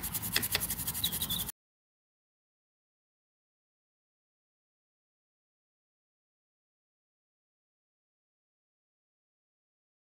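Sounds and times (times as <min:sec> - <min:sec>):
toothbrush scrubbing circuit board: 0:00.0 - 0:01.5.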